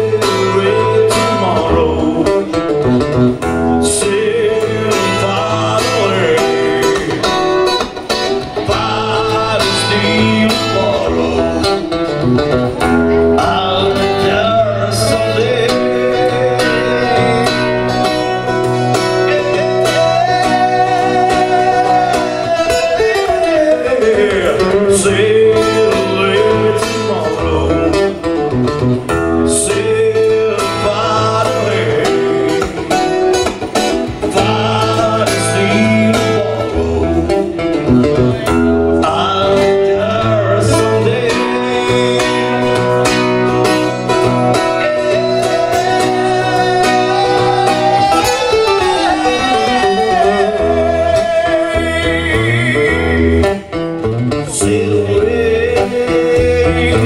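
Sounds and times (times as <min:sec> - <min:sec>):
acoustic guitar: 0:00.0 - 0:57.0
person singing: 0:00.0 - 0:57.0.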